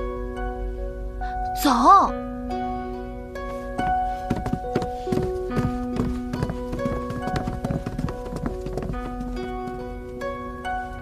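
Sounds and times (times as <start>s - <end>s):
music with long held notes: 0.0s - 11.0s
footsteps on floor: 3.6s - 10.2s.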